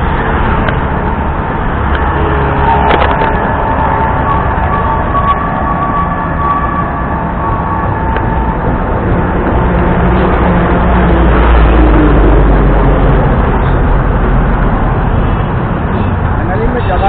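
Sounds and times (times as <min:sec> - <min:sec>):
steady high tone: 0:00.0 - 0:11.9
deep rumble: 0:00.0 - 0:15.8
road traffic passing: 0:00.0 - 0:17.0.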